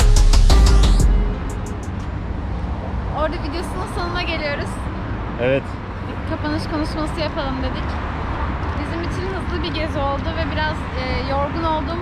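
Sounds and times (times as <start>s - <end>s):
low hum of city traffic: 0.2s - 12.0s
woman's voice: 3.1s - 4.9s, 6.1s - 12.0s.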